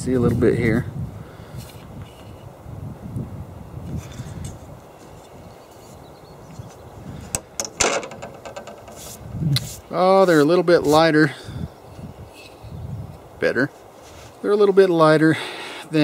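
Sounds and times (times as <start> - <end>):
microphone handling rumble: 6.4 - 10.0
sharp clicks and knocks: 7.3 - 9.2.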